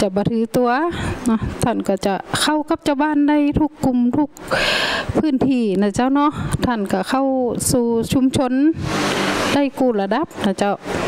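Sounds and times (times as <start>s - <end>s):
woman speaking into microphone: 0.0s - 10.9s
loud rushing noise: 8.7s - 9.8s.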